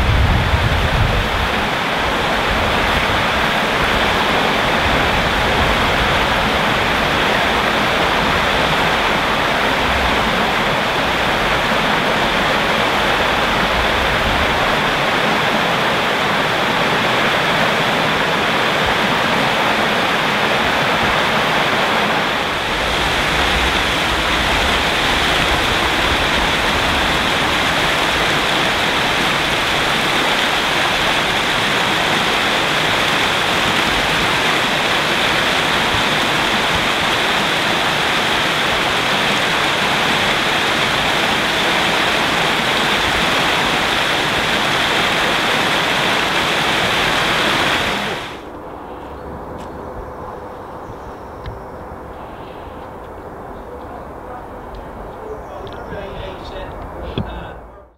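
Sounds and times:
stream cascading over rocks: 0.0s - 48.6s.

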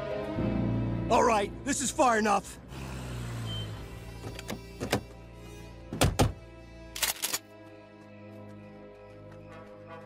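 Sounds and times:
background music: 0.0s - 10.0s
car doors opening: 3.5s - 5.1s.

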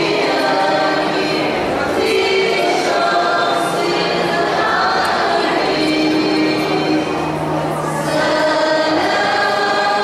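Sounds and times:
choir singing a hymn: 0.0s - 10.0s.

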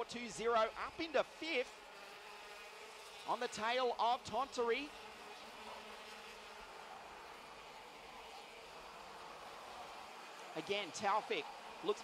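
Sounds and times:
faint kart engines buzzing: 0.0s - 12.0s.

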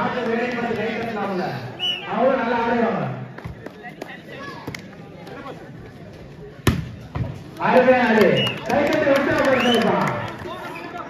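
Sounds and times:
low crowd chatter: 0.0s - 11.0s.

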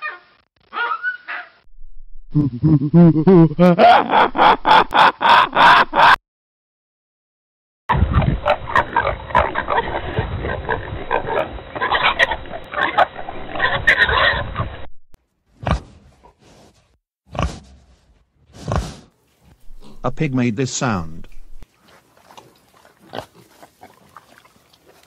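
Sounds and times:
pigs grunting: 8.0s - 14.4s, 15.6s - 16.4s, 17.3s - 17.7s, 18.5s - 20.2s, 21.3s - 25.0s.

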